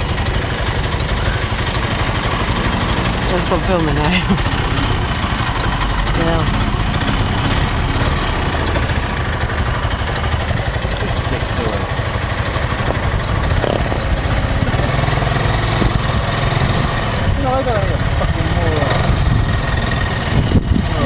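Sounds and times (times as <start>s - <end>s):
dune buggy engine running: 0.0s - 21.0s
road noise: 0.0s - 21.0s.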